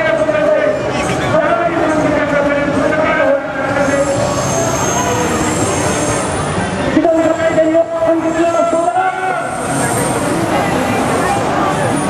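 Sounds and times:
train rumbling on elevated tracks: 0.0s - 12.0s
high-pitched wheel squeal: 3.6s - 12.0s.

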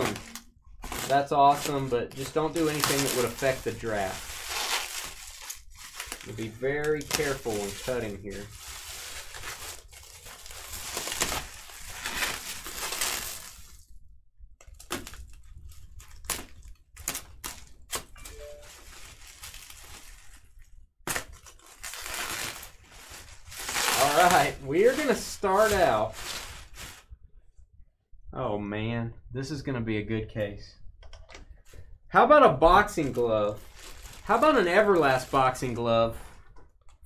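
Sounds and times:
bubble wrap popping clicks: 0.0s - 3.4s
bubble wrap crinkling: 0.0s - 13.9s, 14.6s - 27.1s, 32.6s - 37.0s.

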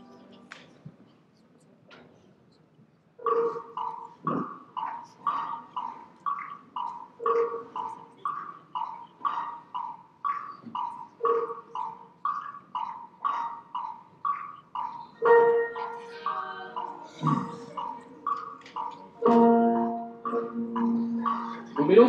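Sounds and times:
tuned percussion music: 3.2s - 22.0s.

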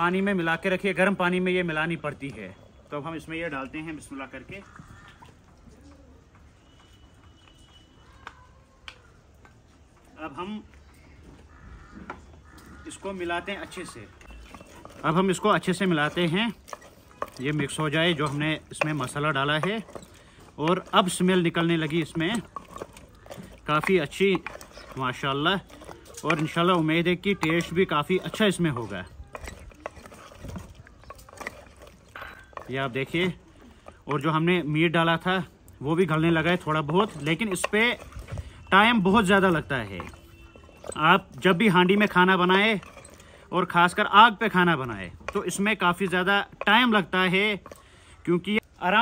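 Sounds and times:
bird cooing softly: 4.7s - 6.3s
metal ladle stirring thick curry: 11.5s - 47.8s
metal scraping and knocking pot: 12.8s - 47.8s.

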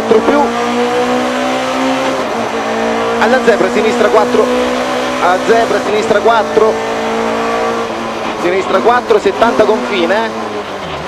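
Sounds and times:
rally car engine under load: 0.0s - 11.0s.

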